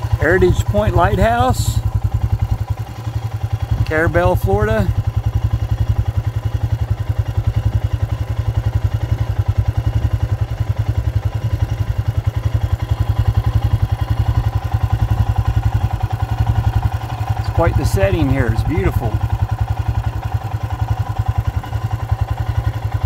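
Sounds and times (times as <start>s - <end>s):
engine running with low throb: 0.0s - 23.0s.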